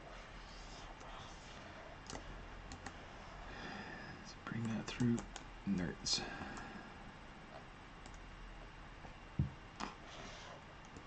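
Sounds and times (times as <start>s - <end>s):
faint steady hum: 0.0s - 11.0s
keyboard and mouse clicks: 2.0s - 3.0s.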